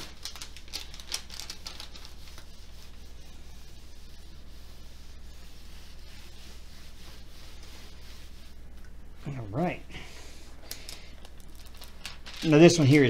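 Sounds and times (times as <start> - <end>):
soft plastic rustling: 0.0 - 9.4, 10.3 - 13.0.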